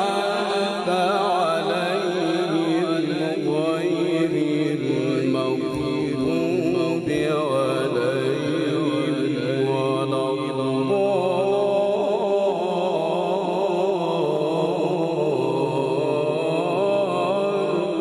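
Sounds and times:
man reciting melodically: 0:00.0 - 0:18.0.

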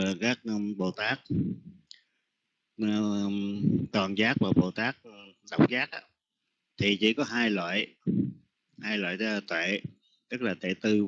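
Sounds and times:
man speaking over voice chat: 0:00.0 - 0:01.4, 0:02.8 - 0:06.1, 0:08.8 - 0:11.0.

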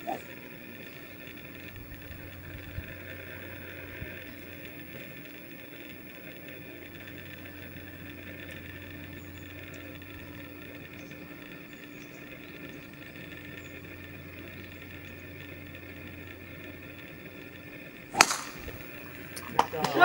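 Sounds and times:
steady machine hum: 0:00.0 - 0:20.0.

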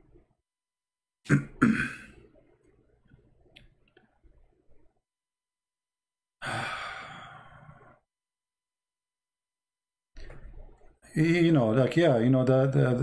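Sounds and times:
man coughing: 0:01.3 - 0:02.2
man sighing: 0:06.4 - 0:07.9.

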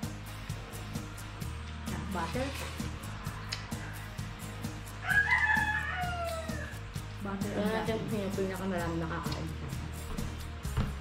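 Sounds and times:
background music with beat: 0:00.0 - 0:11.0
rooster crowing: 0:05.0 - 0:06.9.

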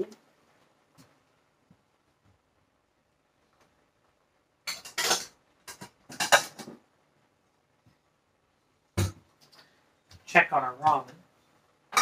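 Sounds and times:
dishes clattering: 0:04.7 - 0:06.8.

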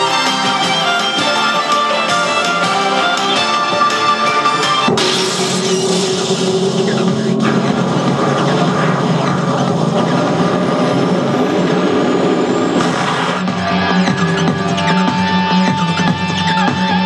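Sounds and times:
pachinko machine rumbling effect: 0:00.0 - 0:16.1
faint rising whine: 0:04.3 - 0:13.4.

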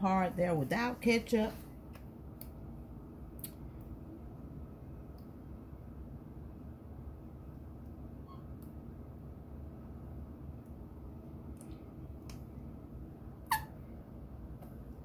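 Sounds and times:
low steady hum: 0:00.0 - 0:15.0
sharp squeak: 0:13.4 - 0:13.8.

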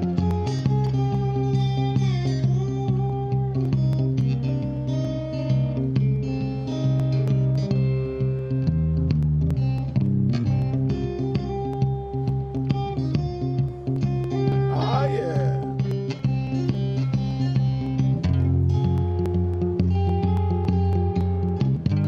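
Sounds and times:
electric slide guitar: 0:00.0 - 0:22.0.

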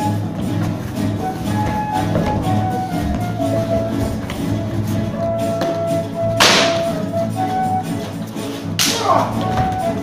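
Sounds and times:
background music with held melody: 0:00.0 - 0:10.0.

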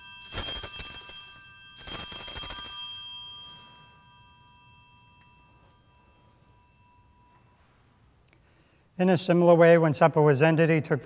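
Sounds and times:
altar bells ringing: 0:00.0 - 0:09.0.

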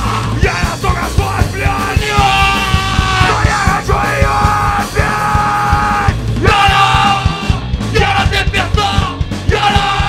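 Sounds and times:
distorted guitars: 0:00.0 - 0:10.0
shouted vocals: 0:00.0 - 0:10.0
steady drumbeat: 0:00.0 - 0:10.0.

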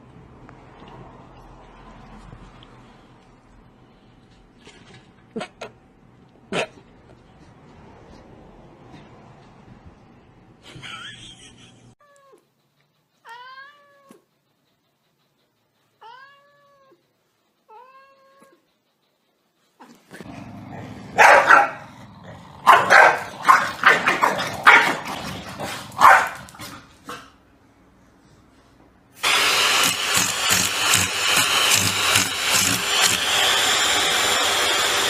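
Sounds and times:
cat meowing: 0:13.2 - 0:14.3, 0:16.0 - 0:17.0, 0:17.7 - 0:18.6
loud harsh noisy bursts: 0:29.2 - 0:35.0.

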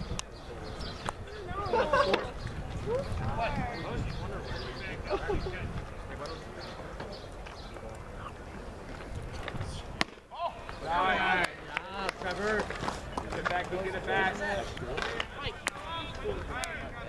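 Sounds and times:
people calling and shouting: 0:00.0 - 0:17.0
sharp crack: 0:10.0 - 0:10.8.

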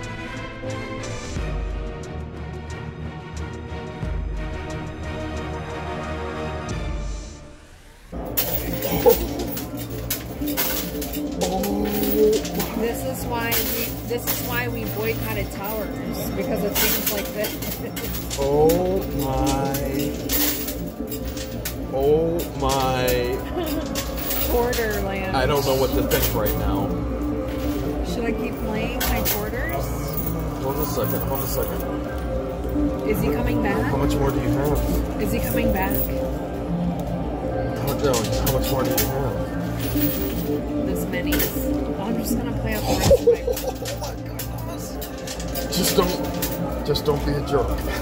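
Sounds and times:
coins clinking: 0:08.2 - 0:48.0.

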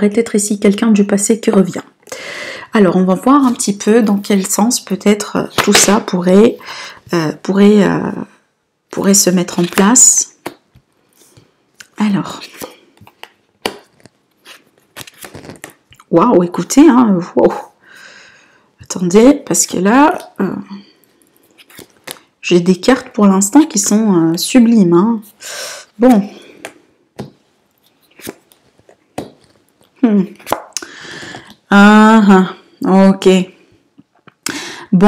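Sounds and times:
cards clicking and sliding: 0:12.6 - 0:15.8.

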